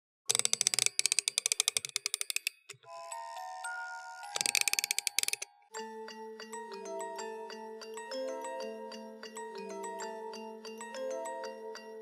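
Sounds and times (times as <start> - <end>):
music box winding clicks: 0.3 - 3.0, 4.3 - 5.5
music box tinkling tune: 0.3 - 12.0.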